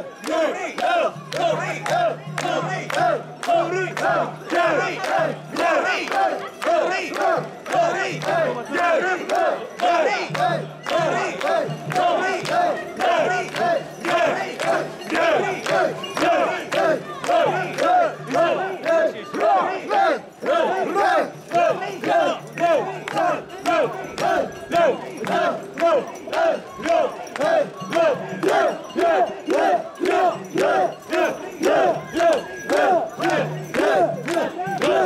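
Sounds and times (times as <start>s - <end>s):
group shouting rhythmic chant: 0.0s - 35.0s.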